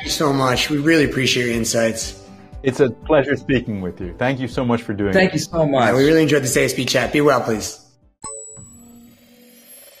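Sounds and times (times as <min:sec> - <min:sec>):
bell-like ding: 0:08.2 - 0:10.0.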